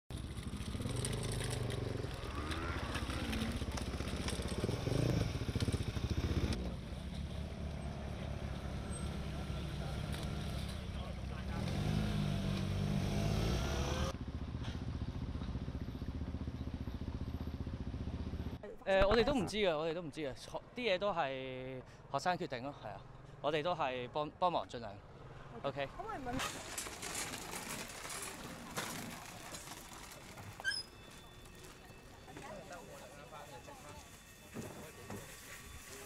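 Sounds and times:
motorcycle engines running: 0:00.1 - 0:18.6
people talking: 0:10.9 - 0:11.8, 0:32.2 - 0:36.0.

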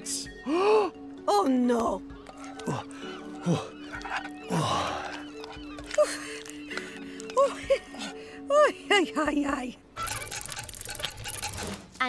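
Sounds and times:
rapid mechanical clicking rattle: 0:10.0 - 0:11.8.

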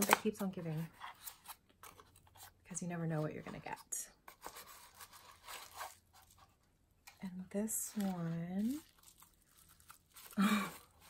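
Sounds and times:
paper packaging rustling: 0:03.4 - 0:06.7, 0:07.8 - 0:11.0.

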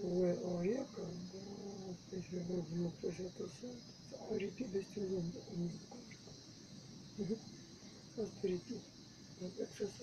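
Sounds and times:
steady high hiss: 0:00.0 - 0:10.0.

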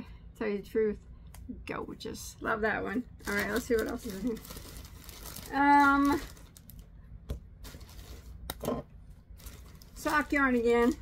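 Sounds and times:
packaging rustling: 0:03.2 - 0:06.9, 0:07.6 - 0:08.5, 0:09.4 - 0:11.0.

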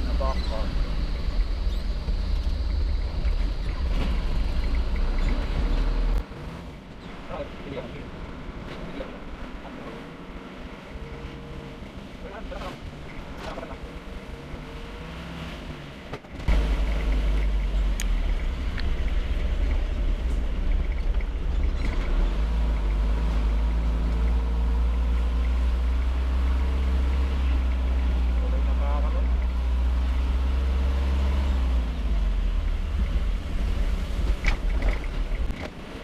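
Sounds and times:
vehicle engine and road noise: 0:00.0 - 0:36.0.

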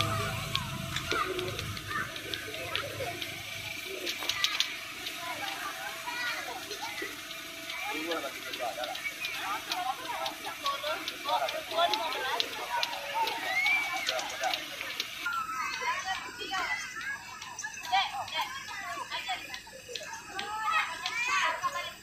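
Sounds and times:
adults and children talking: 0:00.0 - 0:22.0.

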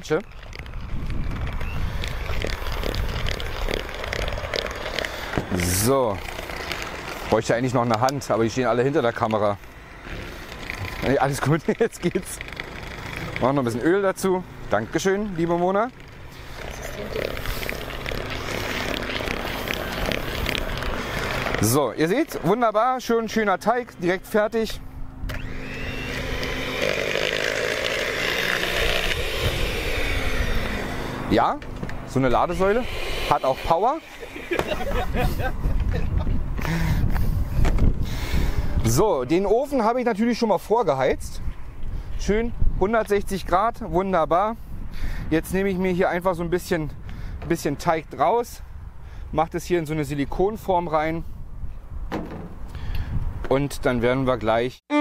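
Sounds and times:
electric hand mixer whisking batter: 0:01.8 - 0:07.7, 0:25.3 - 0:31.5, 0:32.1 - 0:35.5.

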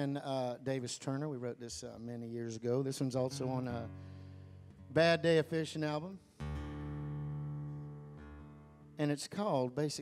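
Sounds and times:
acoustic guitar chord ringing: 0:03.2 - 0:09.0.

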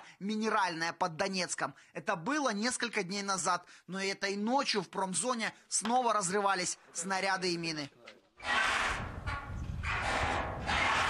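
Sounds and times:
metal roof sheet scraping: 0:08.4 - 0:11.0.

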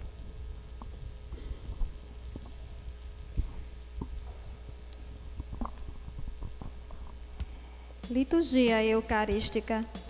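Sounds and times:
sound system hum: 0:00.0 - 0:10.0
microphone handling knocks: 0:05.3 - 0:07.5.

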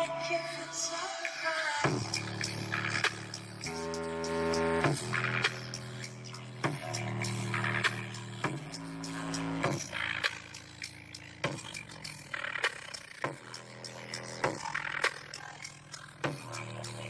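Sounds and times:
bass-boosted music in a car: 0:00.0 - 0:17.0.

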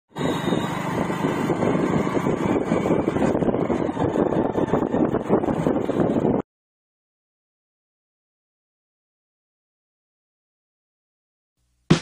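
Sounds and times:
motorcycle engine pulsing: 0:00.1 - 0:06.3
wind and road noise: 0:00.1 - 0:06.4.

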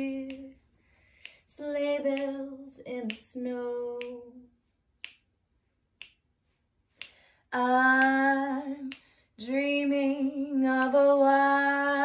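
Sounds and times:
finger snaps: 0:00.0 - 0:11.2.

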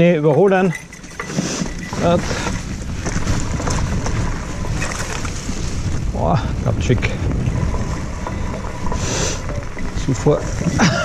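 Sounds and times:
bike tyres rolling on dirt trail: 0:00.0 - 0:11.0
wind rushing over microphone: 0:00.6 - 0:11.0.

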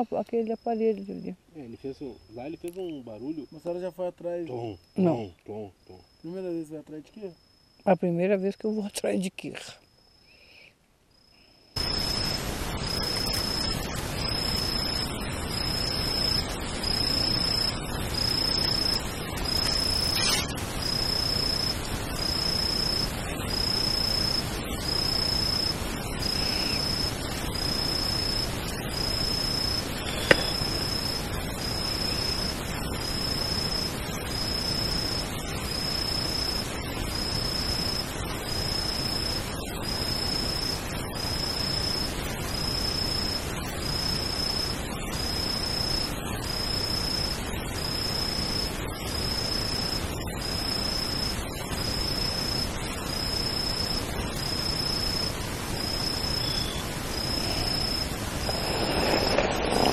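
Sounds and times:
steady hiss: 0:00.0 - 0:07.7, 0:10.2 - 0:59.9
insect calling: 0:00.0 - 0:59.9.

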